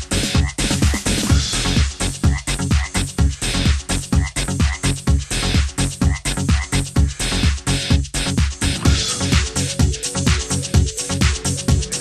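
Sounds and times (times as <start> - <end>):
kick drum: 0.0 - 11.9
electronic dance music: 0.0 - 12.0
frog croak sounds: 0.2 - 1.0, 2.2 - 3.1, 4.0 - 5.0, 6.0 - 6.9.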